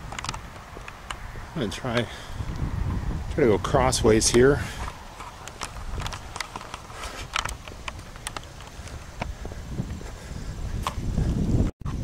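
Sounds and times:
wind rumble on microphone: 0:00.0 - 0:12.0
footsteps: 0:04.3 - 0:12.0.

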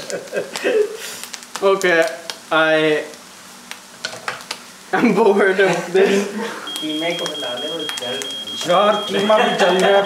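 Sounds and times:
sharp crackles: 0:00.0 - 0:04.9, 0:06.7 - 0:09.0
potatoes sizzling in hot oil: 0:00.0 - 0:10.0.

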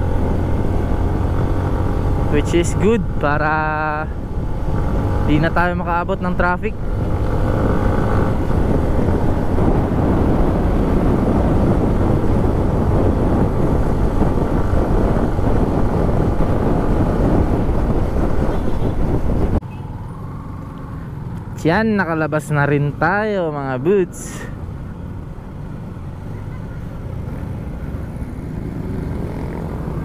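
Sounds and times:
wind buffeting microphone: 0:00.0 - 0:19.6
motorcycle engine: 0:00.0 - 0:21.8, 0:22.6 - 0:30.0.

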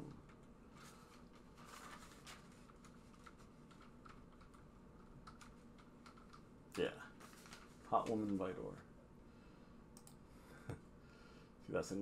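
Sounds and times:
keyboard typing: 0:03.1 - 0:06.5.

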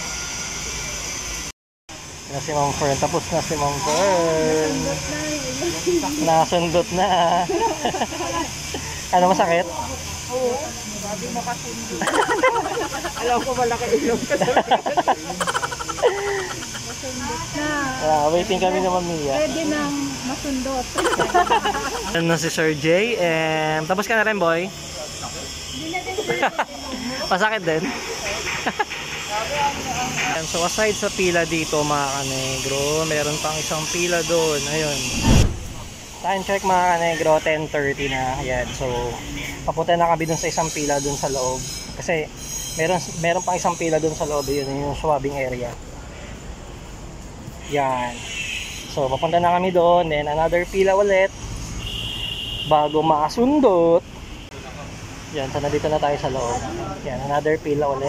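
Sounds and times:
outdoor hiss and rumble: 0:00.0 - 0:58.0
people talking: 0:02.3 - 0:08.5, 0:09.1 - 0:35.2, 0:36.2 - 0:45.8.

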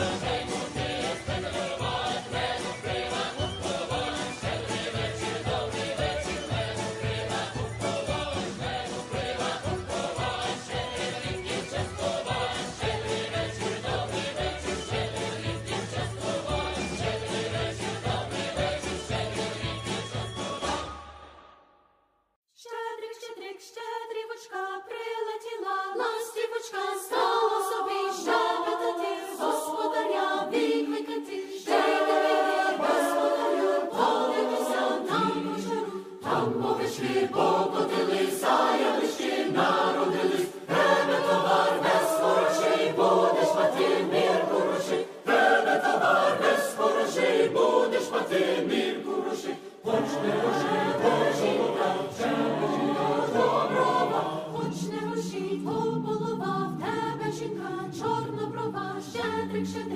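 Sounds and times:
choir singing a carol: 0:00.0 - 0:21.7, 0:22.7 - 0:59.9.

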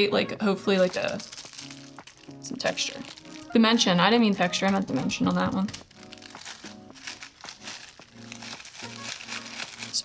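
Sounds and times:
soft background music: 0:00.0 - 0:10.0
cellophane film crackling: 0:00.2 - 0:10.0.

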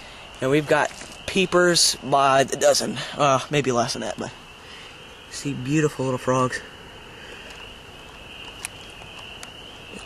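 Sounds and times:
spring peepers chorus: 0:00.0 - 0:10.0
faint clicks: 0:07.2 - 0:10.0.

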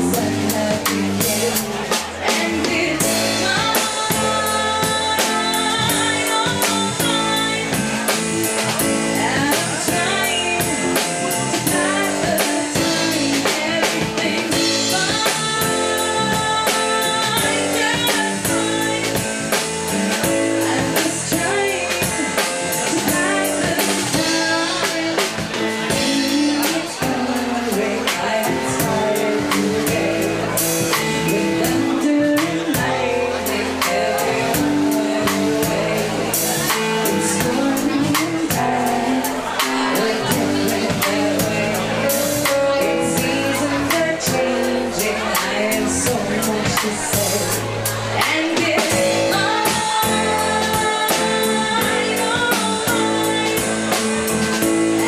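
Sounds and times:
drum kit with cymbals: 0:00.0 - 0:55.0
guitar: 0:00.0 - 0:55.0
live band playing: 0:00.0 - 0:55.0
sustained keyboard chords: 0:00.0 - 0:55.0
woman singing: 0:00.0 - 0:55.0.

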